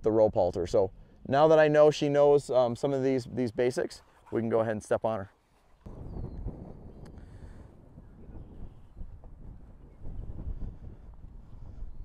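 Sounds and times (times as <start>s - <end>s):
wind buffeting microphone: 5.8s - 12.0s.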